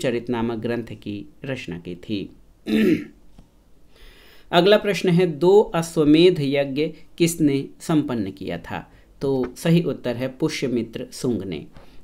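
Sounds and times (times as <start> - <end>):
man clearing throat: 2.6 - 3.2.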